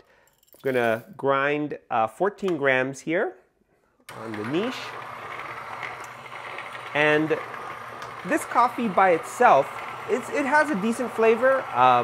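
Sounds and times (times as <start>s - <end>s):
coffee grinder grinding beans: 4.1s - 12.0s.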